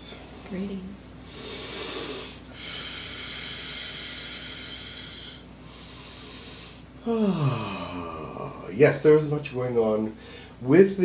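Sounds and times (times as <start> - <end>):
person breathing heavily: 1.2 - 8.8, 10.2 - 10.6.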